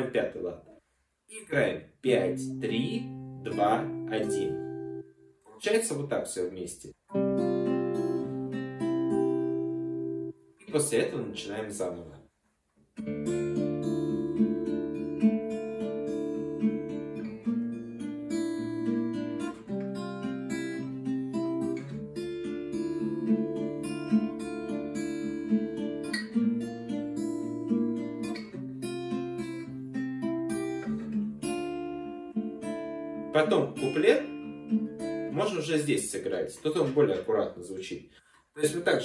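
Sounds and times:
fingerpicked acoustic guitar: 2.1 - 5.6, 7.1 - 11.4, 12.9 - 37.2.

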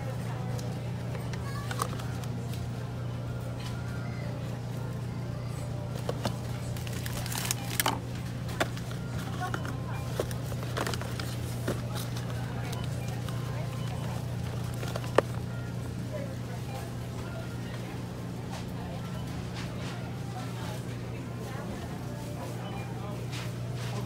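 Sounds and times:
faint background voices: 0.0 - 24.0.

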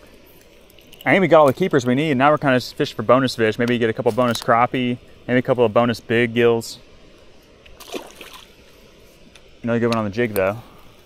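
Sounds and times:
small splash in water: 7.8 - 8.6.

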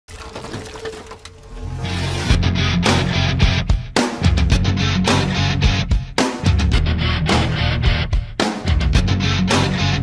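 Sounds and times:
electric guitars: 1.8 - 10.0.

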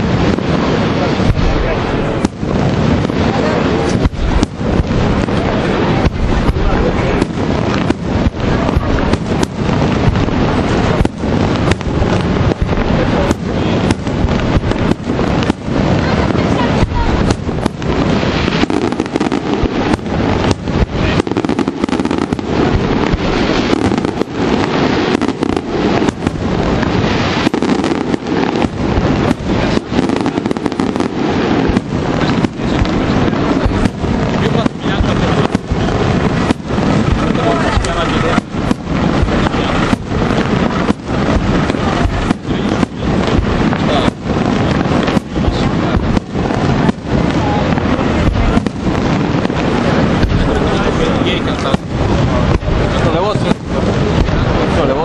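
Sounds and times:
firework crackle: 0.0 - 55.0
firework shells bursting: 0.0 - 55.0.

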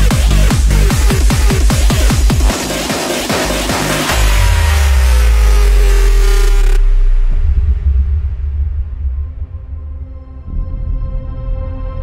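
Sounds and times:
deep bass swell: 0.0 - 12.0
low rumbling bass: 0.0 - 12.0.

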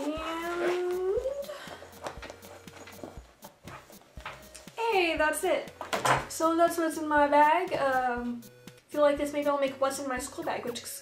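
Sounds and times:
hands rummaging through handbag: 0.0 - 4.6.

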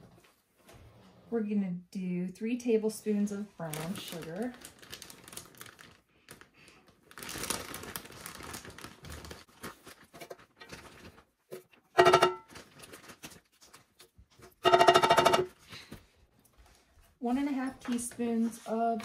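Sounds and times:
spoon tapping metal pan: 12.0 - 12.5, 14.6 - 15.5.

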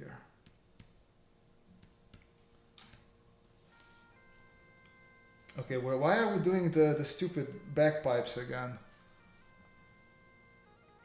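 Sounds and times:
quiet bagpipe music: 2.5 - 11.0.

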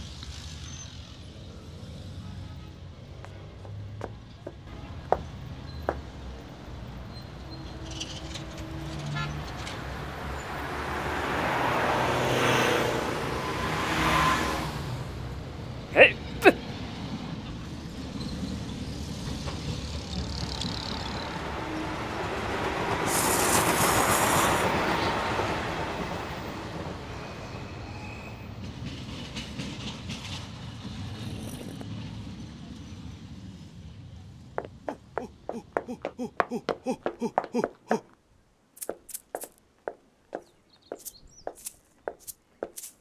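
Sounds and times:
train passing: 16.6 - 31.4.

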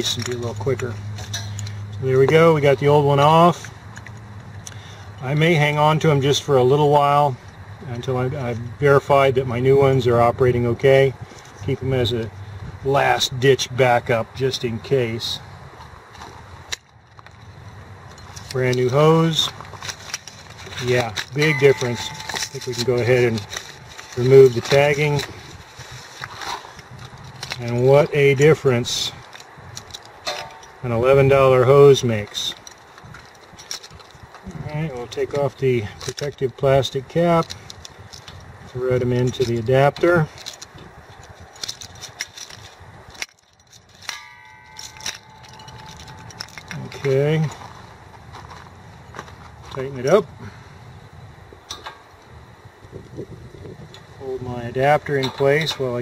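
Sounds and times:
metallic clicks of hose fitting: 0.0 - 2.0, 3.6 - 5.2
low steady background noise: 0.0 - 56.0
ringing tone: 21.4 - 23.4, 44.2 - 46.3.

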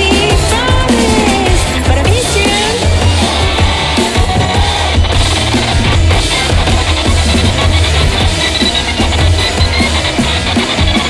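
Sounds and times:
drum kit hitting: 0.0 - 11.0
instrumental rock music: 0.0 - 11.0.

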